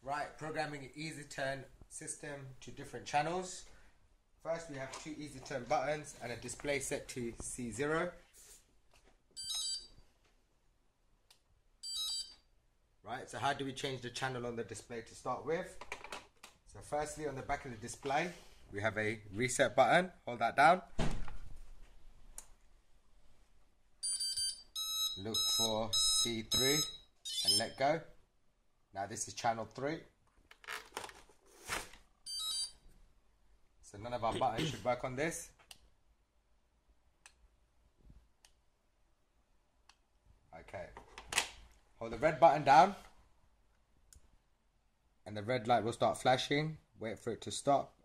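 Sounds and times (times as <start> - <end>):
high multi-tone electronic beep: 9.4 - 9.9, 11.8 - 12.4, 24.0 - 27.8, 32.3 - 32.8.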